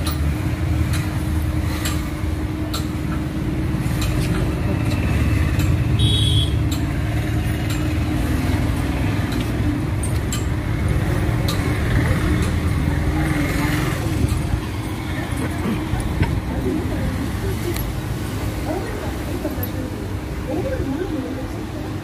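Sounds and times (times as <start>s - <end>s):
road traffic rumbling: 0.0s - 22.0s.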